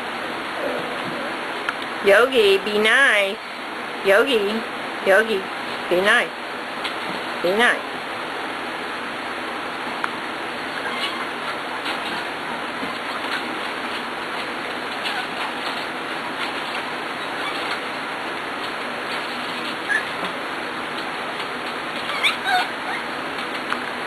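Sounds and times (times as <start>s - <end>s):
puppy squeaks: 10.8s - 11.4s, 15.0s - 15.7s, 17.2s - 17.8s, 19.8s - 20.2s, 22.0s - 23.2s.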